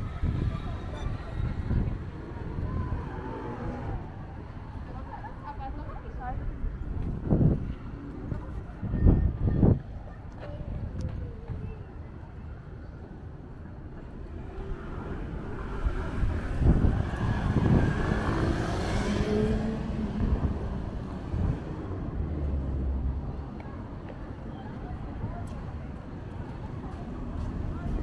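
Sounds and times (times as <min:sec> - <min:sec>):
street traffic: 0:00.0 - 0:28.0
wind rumble on microphone: 0:00.0 - 0:28.0
vehicle passing close: 0:14.4 - 0:23.3.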